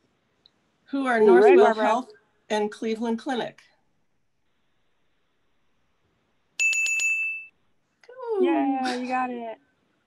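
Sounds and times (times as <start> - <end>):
bright bell dings: 6.6 - 7.5.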